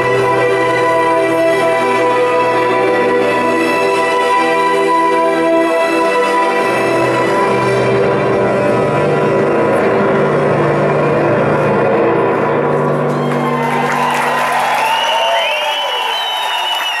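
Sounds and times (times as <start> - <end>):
held synthesizer chord: 0.0 - 13.1
crowd cheering and whistling: 12.9 - 17.0.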